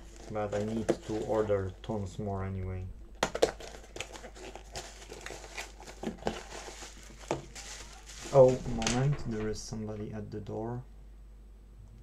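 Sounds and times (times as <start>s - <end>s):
packaging crinkling and rustling: 0.0s - 1.7s, 3.2s - 9.6s.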